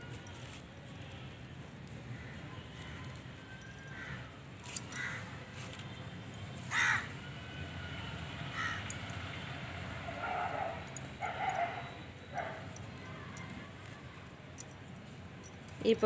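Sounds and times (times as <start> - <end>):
crow cawing: 5.0 - 5.3, 6.7 - 7.1, 8.5 - 8.9.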